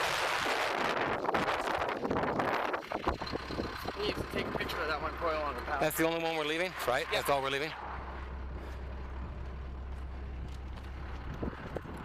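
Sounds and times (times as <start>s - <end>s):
truck engine idling: 0.8s - 12.0s.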